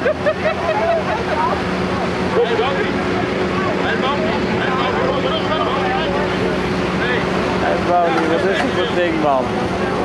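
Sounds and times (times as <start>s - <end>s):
heavy diesel engine running: 0.0s - 10.0s
spectators talking and calling: 0.0s - 10.0s.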